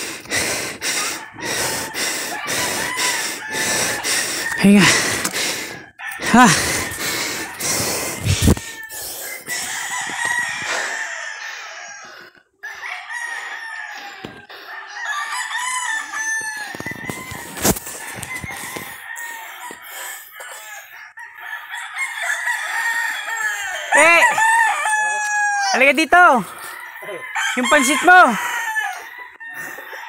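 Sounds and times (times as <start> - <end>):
chickens clucking: 0.0 - 12.4
rooster crowing: 0.9 - 30.0.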